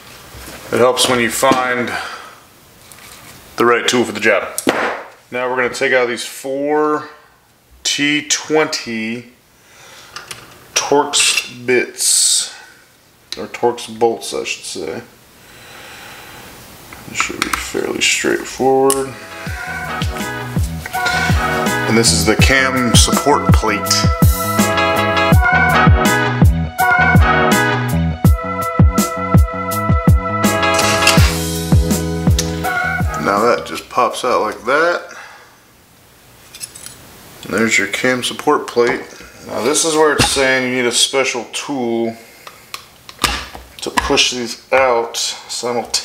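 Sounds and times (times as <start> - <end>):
person breathing close to microphone: 9.6 - 10.3, 15.4 - 16.6, 19.2 - 21.8, 35.1 - 35.7.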